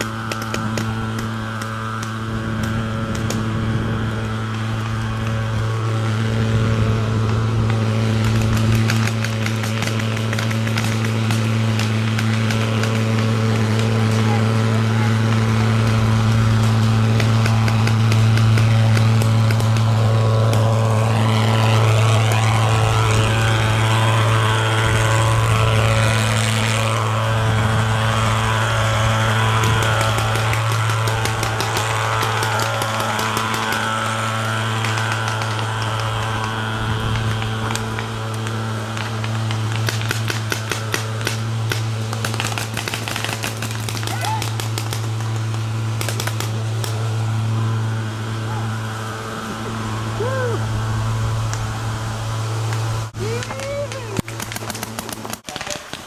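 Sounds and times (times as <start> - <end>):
low drone: 0.0 - 56.0
paintball markers popping: 29.6 - 47.0, 53.3 - 56.0
hiss: 48.5 - 56.0.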